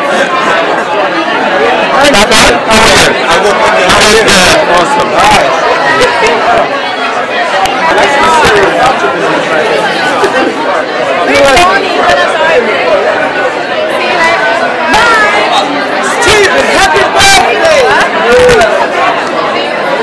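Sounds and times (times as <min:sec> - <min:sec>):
loud overlapping chatter: 0:00.0 - 0:20.0.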